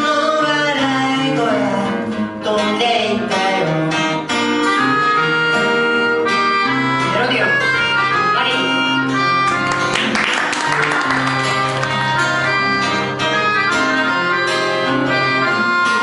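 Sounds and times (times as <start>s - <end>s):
acoustic guitar accompaniment: 0.0s - 16.0s
melodica playing held notes: 4.4s - 16.0s.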